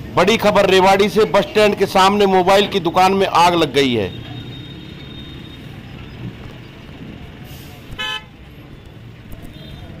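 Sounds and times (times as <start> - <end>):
street traffic noise: 0.0 - 10.0
vehicle horn toot: 8.0 - 8.3, 9.4 - 10.0.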